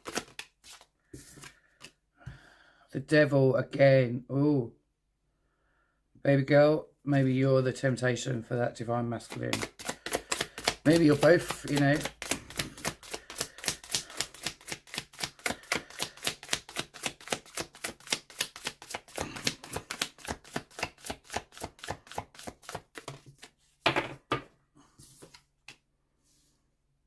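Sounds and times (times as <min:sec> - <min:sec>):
cards being shuffled: 0:00.0 - 0:02.0, 0:09.2 - 0:23.6, 0:25.0 - 0:25.8
card tapped on wooden table: 0:23.8 - 0:24.5.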